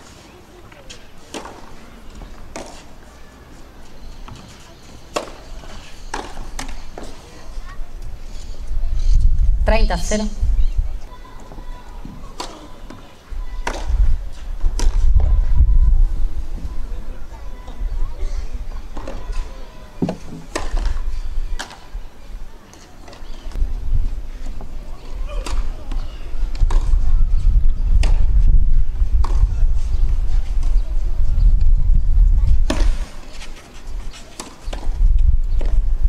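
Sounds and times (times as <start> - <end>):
tennis ball hit by racket: 2.5 - 2.9, 5.1 - 5.5.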